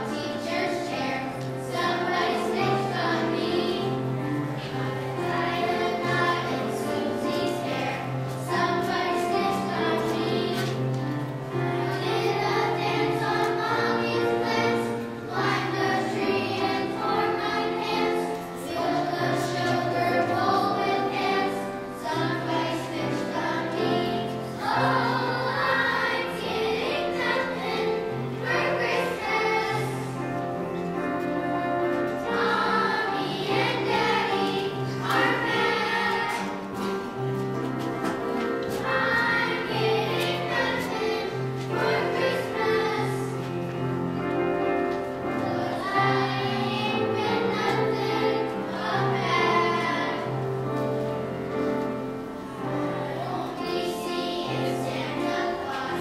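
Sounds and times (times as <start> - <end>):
children's choir singing: 0.0 - 56.0.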